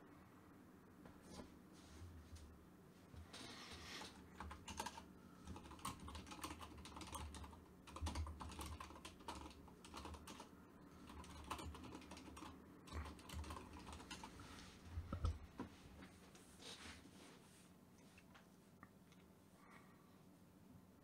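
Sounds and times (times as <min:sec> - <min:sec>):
typing on computer keyboard: 0:04.0 - 0:14.3.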